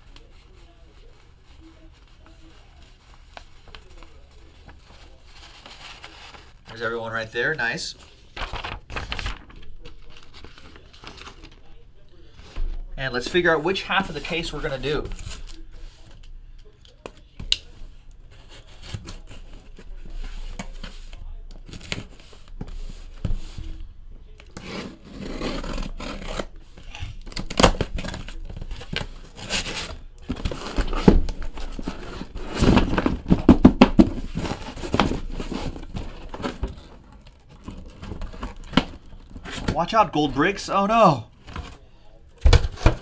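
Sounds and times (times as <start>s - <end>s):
tape and cardboard ripping: 24.6s - 30.9s.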